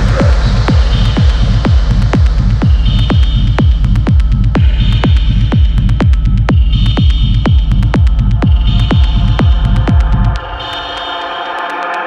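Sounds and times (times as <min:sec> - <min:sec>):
rumbling bass: 0:00.0 - 0:11.0
kick drum: 0:00.0 - 0:12.0.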